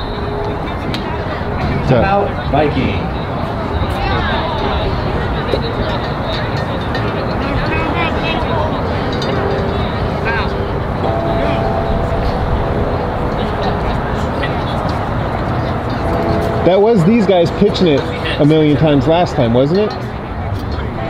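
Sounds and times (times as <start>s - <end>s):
distant voices: 0.0s - 21.0s
outdoor background noise: 0.0s - 21.0s.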